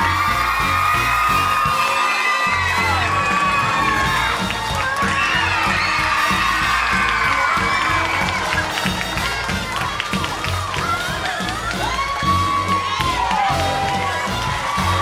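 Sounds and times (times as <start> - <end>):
children cheering and shrieking: 0.0 - 15.0.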